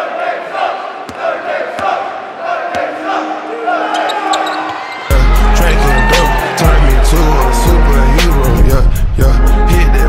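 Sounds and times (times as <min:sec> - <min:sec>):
hip-hop track with heavy bass: 0:05.1 - 0:10.0.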